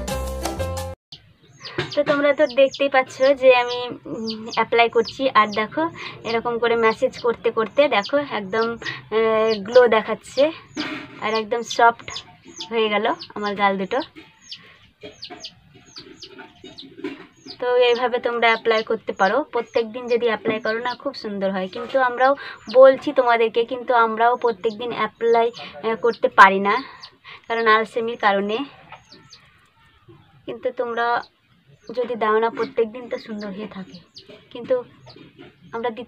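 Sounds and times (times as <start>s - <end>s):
chickens peeping: 1.2s - 36.0s
drawn-out animal calls: 1.5s - 36.0s.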